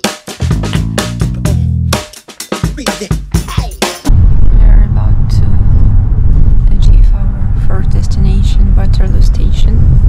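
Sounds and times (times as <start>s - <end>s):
music with sharp drum hits: 0.0s - 4.1s.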